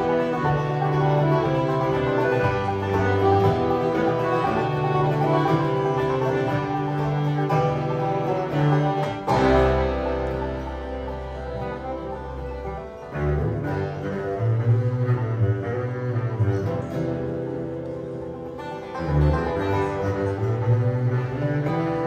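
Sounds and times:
acoustic string band playing: 0:00.0 - 0:22.0.

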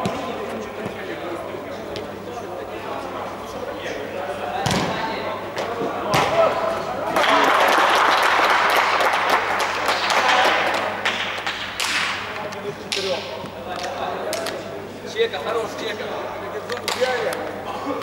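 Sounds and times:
football being kicked: 0:04.6 - 0:04.9.

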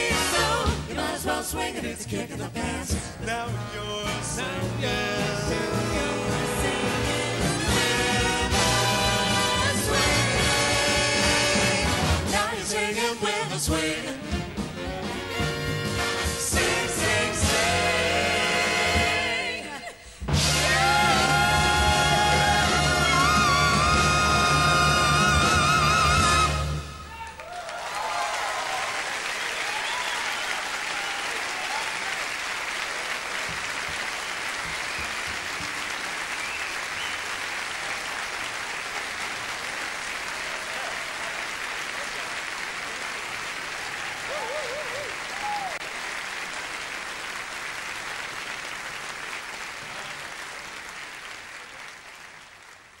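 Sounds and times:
audience applauding: 0:18.1 - 0:53.0
people cheering: 0:19.6 - 0:47.3.

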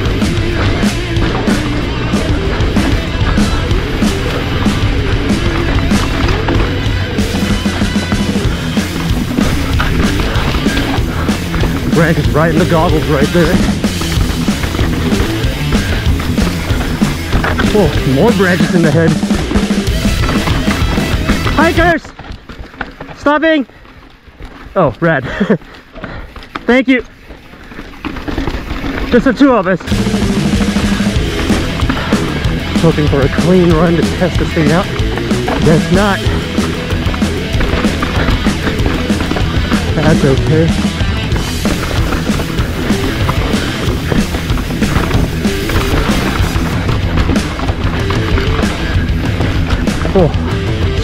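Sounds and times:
background music: 0:00.0 - 0:22.0, 0:29.8 - 0:51.0
bike tyres on loose dirt: 0:00.0 - 0:51.0.

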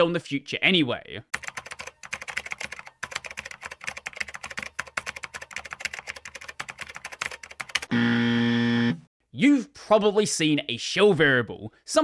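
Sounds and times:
computer keyboard typing: 0:01.3 - 0:07.9.

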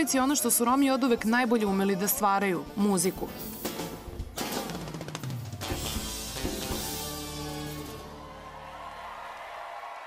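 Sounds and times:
concert crowd noise: 0:04.9 - 0:10.0.

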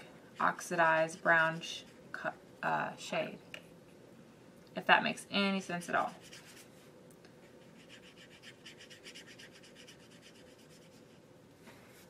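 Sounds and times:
paintbrush scratching on paper: 0:00.4 - 0:02.3, 0:05.7 - 0:06.7, 0:07.4 - 0:11.2.

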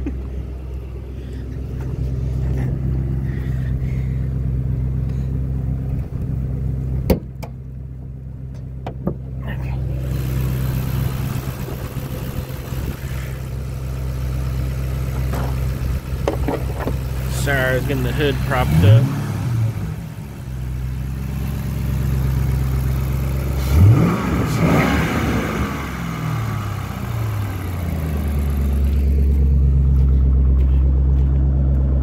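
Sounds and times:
car engine idling: 0:00.0 - 0:32.0
car hood clacking: 0:08.5 - 0:09.3, 0:15.2 - 0:17.0.

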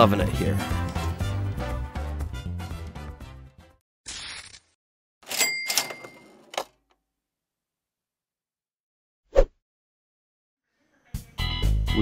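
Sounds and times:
cash register ka-ching: 0:05.2 - 0:06.8
brief swish: 0:09.3 - 0:09.5.

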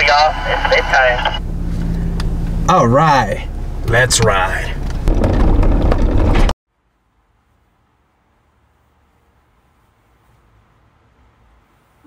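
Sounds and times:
vehicle rumbling on dirt trail: 0:00.0 - 0:06.5.

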